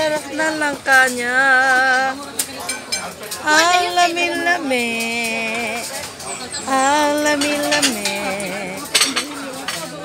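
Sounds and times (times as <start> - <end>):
person singing: 0.0 - 2.2, 3.4 - 6.0, 6.6 - 9.2.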